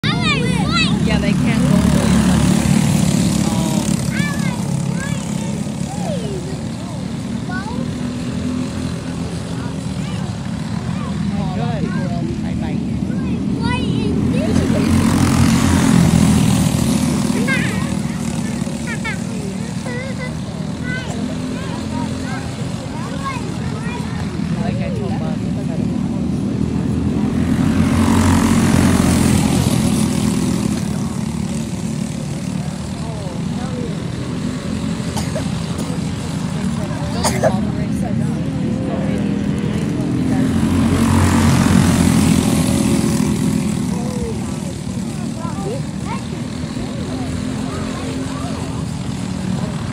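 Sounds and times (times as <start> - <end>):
go-kart engines buzzing: 0.0 - 49.9.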